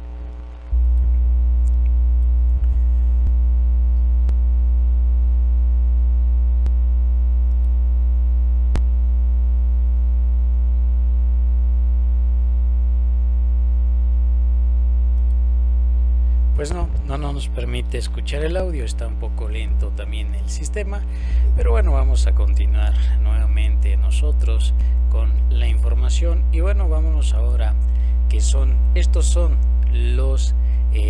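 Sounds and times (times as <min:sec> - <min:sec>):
electrical mains hum: 0:00.0 - 0:31.0.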